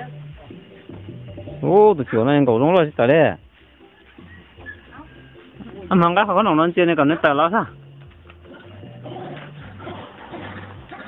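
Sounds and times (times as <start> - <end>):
animal calling in low phrases: 8.5 - 11.0.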